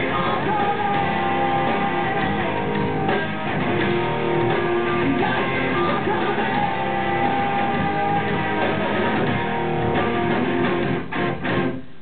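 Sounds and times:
strummed guitar chords: 0.0 - 11.8
live band playing: 0.0 - 12.0.

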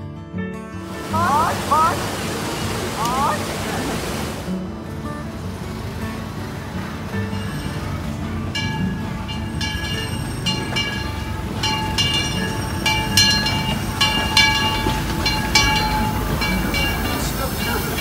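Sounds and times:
steam train rumbling: 0.9 - 18.0
bell ringing: 7.1 - 18.0.

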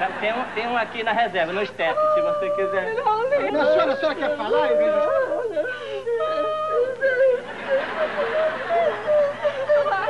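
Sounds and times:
woman wailing and sobbing: 1.4 - 10.0.

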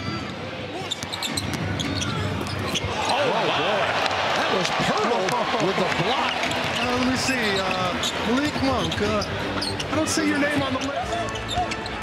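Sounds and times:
sneaker squeaks: 0.0 - 3.1, 6.3 - 12.0.

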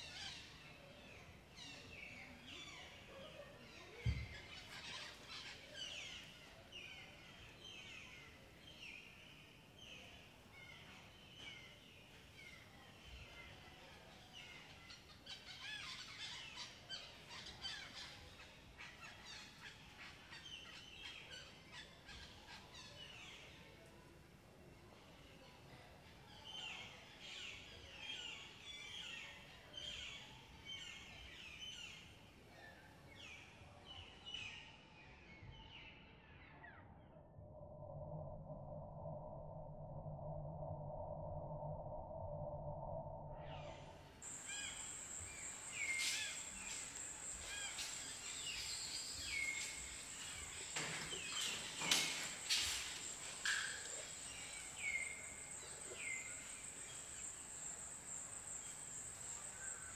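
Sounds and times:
steady high whine: 37.1 - 59.9
birds chirping: 43.1 - 59.9.

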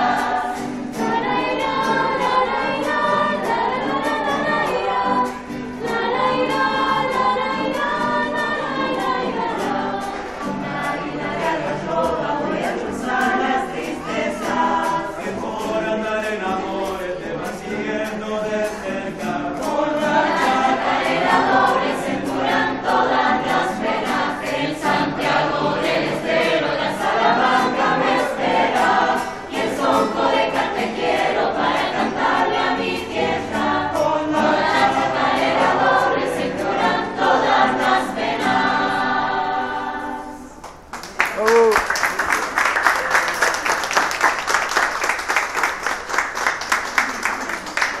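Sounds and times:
choir singing: 0.0 - 40.6
applause: 40.6 - 48.0
person whooping: 41.3 - 42.1.

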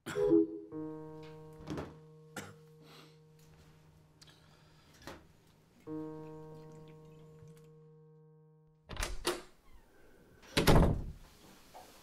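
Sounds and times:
sustained musical note: 0.1 - 4.9, 5.8 - 8.8.

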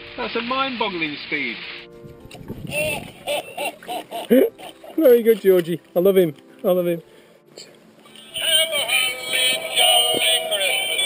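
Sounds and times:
laughter: 2.7 - 4.8.

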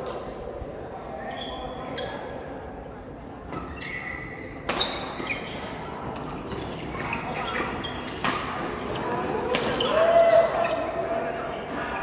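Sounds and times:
sports shoe squeaking on court: 3.6 - 9.0.

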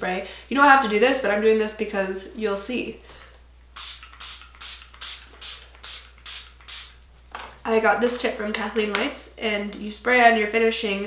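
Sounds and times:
spray bottle spritzes: 3.8 - 7.0.

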